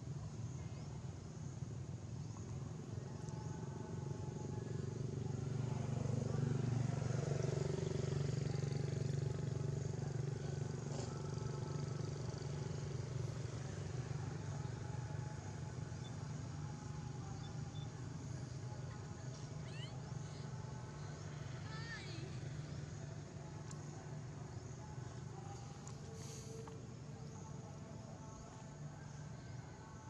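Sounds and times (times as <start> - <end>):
vehicle engine running: 0.0 - 27.5.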